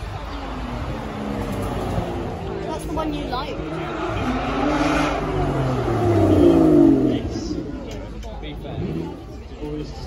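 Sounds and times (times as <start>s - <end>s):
car engine accelerating: 0.0s - 9.4s.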